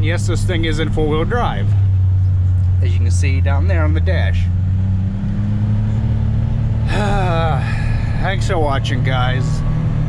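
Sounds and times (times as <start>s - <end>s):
tractor diesel engine running: 0.0s - 10.0s
man sighing: 6.9s - 8.2s.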